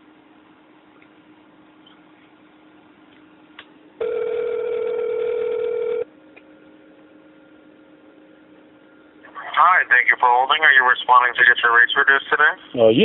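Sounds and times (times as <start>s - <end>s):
telephone ringback tone: 4.0s - 6.1s.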